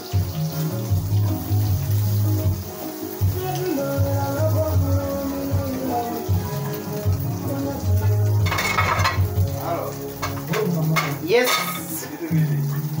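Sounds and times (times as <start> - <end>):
background music: 0.0 - 13.0
food sizzling in metal pot: 0.0 - 13.0.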